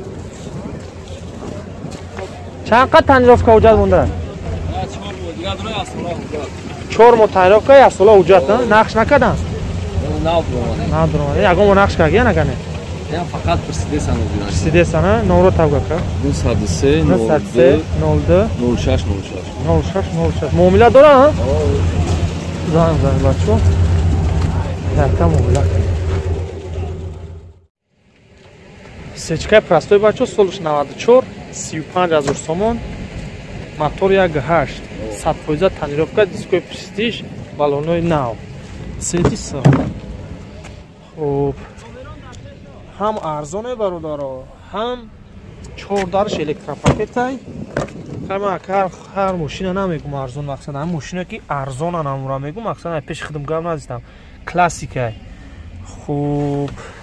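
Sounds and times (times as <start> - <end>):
people talking: 0.0 - 27.2, 29.2 - 32.9, 33.6 - 47.5, 48.2 - 57.0
car engine idling: 0.0 - 57.0
wind rumbling on microphone: 0.0 - 57.0.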